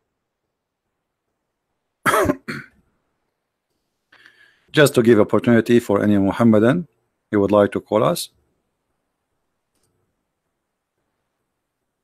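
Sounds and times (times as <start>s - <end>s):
man clearing his throat: 2.0s - 2.8s.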